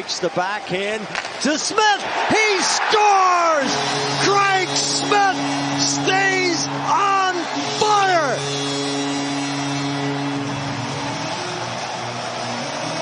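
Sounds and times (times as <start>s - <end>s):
arena crowd noise: 0.0s - 13.0s
arena goal horn: 3.4s - 13.0s.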